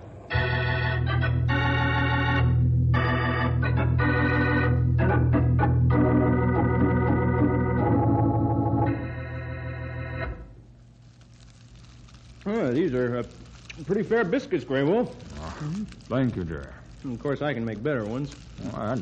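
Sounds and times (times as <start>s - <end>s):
organ chords: 0.0s - 10.7s.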